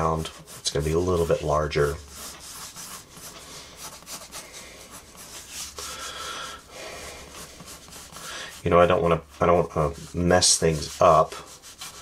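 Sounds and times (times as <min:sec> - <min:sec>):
pencil scratching on paper: 0:00.0 - 0:06.0, 0:07.0 - 0:12.0.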